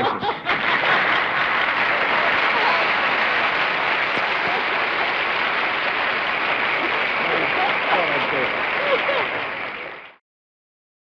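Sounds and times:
audience applauding: 0.4 - 10.2.

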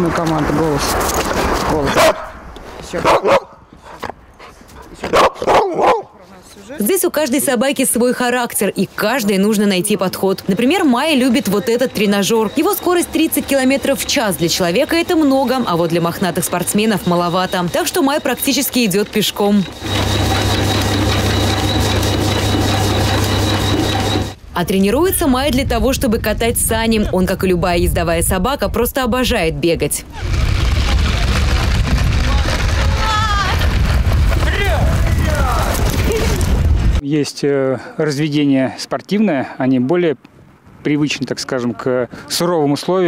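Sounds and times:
dog barking: 2.0 - 2.4, 3.0 - 3.6, 5.1 - 6.2
high whine: 10.6 - 25.4
treadmill motor hum: 11.4 - 24.4.

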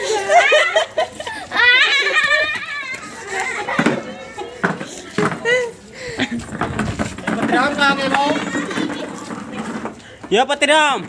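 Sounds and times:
people and children talking: 0.0 - 11.0.

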